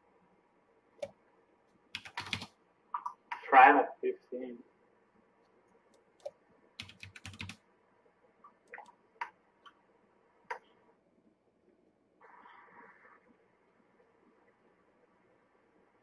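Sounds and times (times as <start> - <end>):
keyboard keys clicking: 2.0 - 2.5, 6.2 - 7.6.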